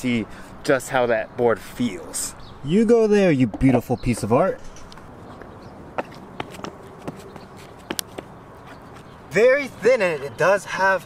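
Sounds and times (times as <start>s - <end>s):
faint outdoor hum: 0.0s - 11.0s
sneakers tapping on skateboard: 5.3s - 9.2s.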